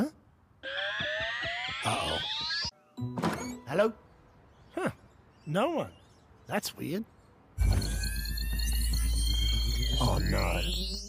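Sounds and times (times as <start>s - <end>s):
deep electronic hum: 7.6s - 11.0s
rapid high-pitched pulsing beep: 7.6s - 11.0s.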